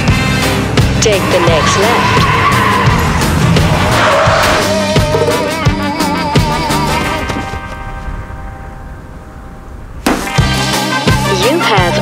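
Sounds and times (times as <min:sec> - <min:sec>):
tires skidding and squealing: 0:00.0 - 0:05.6
music playing: 0:00.0 - 0:08.7, 0:10.1 - 0:12.0.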